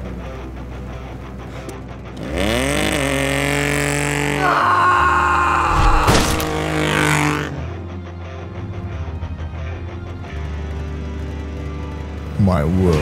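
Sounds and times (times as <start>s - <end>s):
car engine revving: 2.0s - 4.6s, 5.5s - 13.0s.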